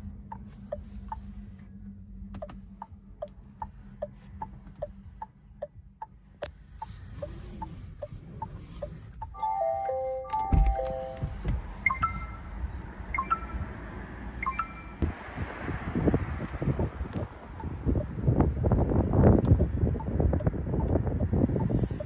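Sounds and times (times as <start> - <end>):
soft ticks: 0.3 - 1.2, 18.7 - 21.8
descending electronic tones: 9.4 - 15.0.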